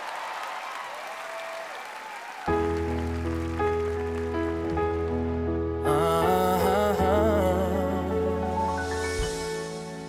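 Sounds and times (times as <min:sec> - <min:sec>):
audience applause and cheering: 0:00.0 - 0:06.0
grand piano chords: 0:02.5 - 0:10.0.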